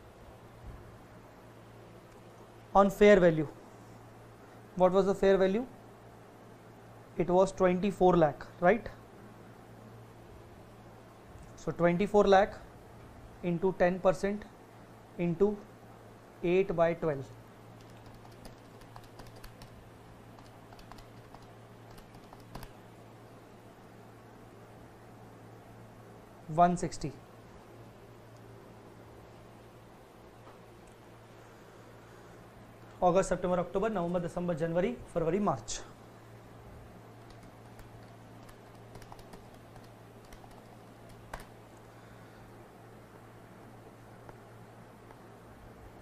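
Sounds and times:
steady low hum: 0.0 - 46.0
typing on computer keyboard: 17.8 - 19.8, 20.4 - 22.8, 37.2 - 41.5.

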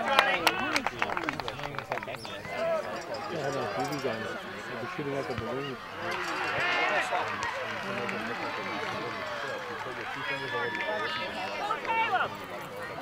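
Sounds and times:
spectators chattering and calling out: 0.0 - 13.0.

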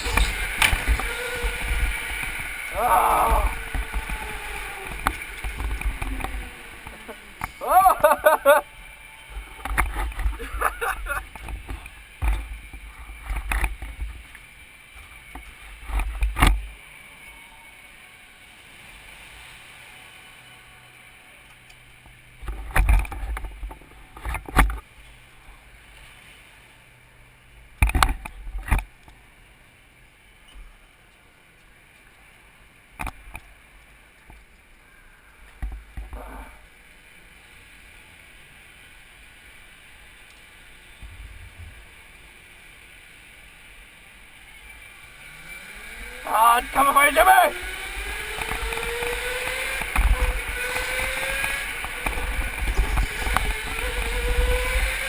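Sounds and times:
faint steady whine: 0.0 - 55.0.

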